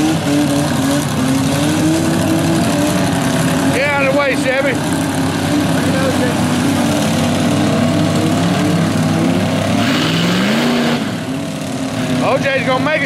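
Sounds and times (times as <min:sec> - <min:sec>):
truck engine revving in mud: 0:00.0 - 0:13.0.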